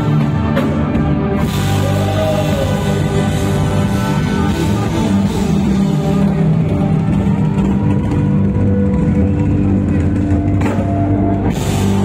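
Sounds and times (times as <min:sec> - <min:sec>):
drums: 0:00.0 - 0:12.0
live band playing loud music: 0:00.0 - 0:12.0.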